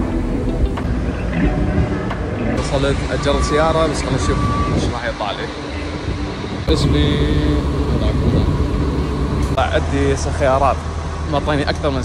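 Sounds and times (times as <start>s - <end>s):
vehicle engines rumbling: 0.0s - 12.0s.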